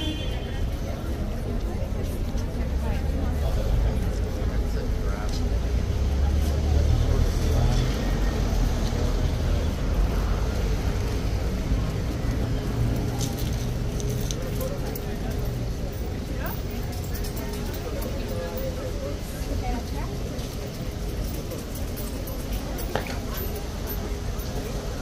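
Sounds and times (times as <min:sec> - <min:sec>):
crowd chatter: 0:00.0 - 0:25.0
road traffic rumble: 0:00.0 - 0:25.0.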